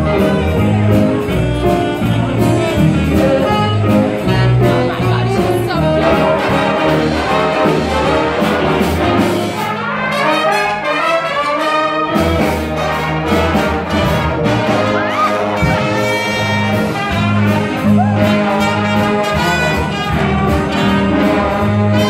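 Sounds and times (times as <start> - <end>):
walking bass line: 0.0 - 9.9, 12.0 - 22.0
big band playing swing music: 0.0 - 22.0
trumpets and trombones: 0.0 - 22.0.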